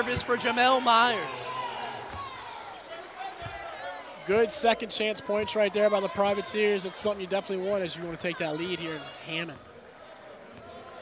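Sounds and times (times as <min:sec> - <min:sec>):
faint crowd noise: 0:00.0 - 0:11.0.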